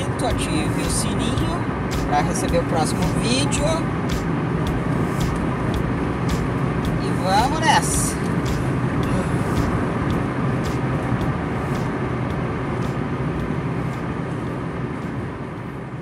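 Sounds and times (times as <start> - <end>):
car engine hum: 0.0 - 16.0
tyre and road noise: 0.0 - 16.0.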